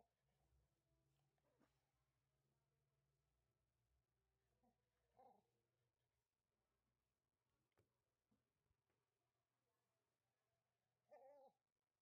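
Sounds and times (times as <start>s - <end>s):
puppy whining: 4.6s - 5.5s, 11.1s - 11.7s.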